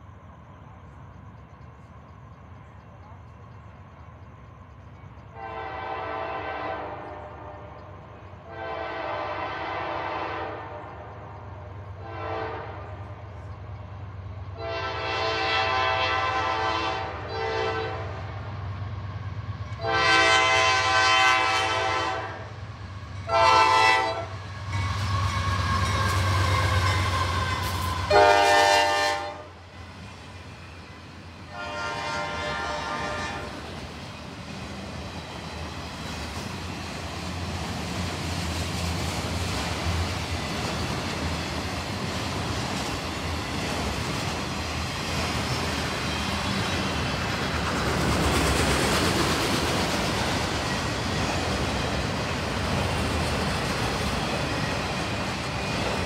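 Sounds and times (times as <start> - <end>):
locomotive engine rumble: 0.0 - 56.0
train cars rolling on rails: 0.0 - 56.0
locomotive air horn blasts: 5.4 - 7.8, 8.5 - 11.0, 12.0 - 13.0, 14.6 - 18.2, 19.8 - 22.5, 23.3 - 24.4, 27.2 - 29.6, 31.5 - 33.6.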